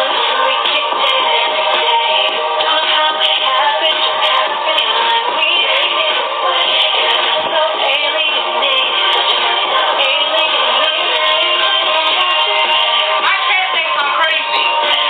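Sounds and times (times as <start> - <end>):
song with sung vocals: 0.0 - 15.0.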